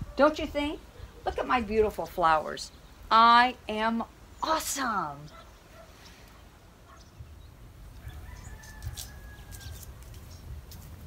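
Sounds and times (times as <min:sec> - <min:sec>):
faint rooster crowing: 0:07.9 - 0:10.1.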